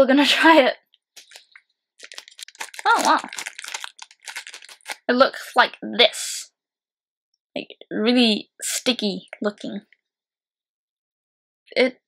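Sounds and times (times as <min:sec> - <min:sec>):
plastic snack packet tearing: 0:01.2 - 0:05.1.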